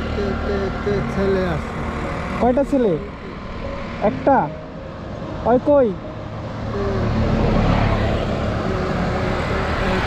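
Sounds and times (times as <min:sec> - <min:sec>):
man chanting drawn-out syllables: 0:08.6 - 0:10.0.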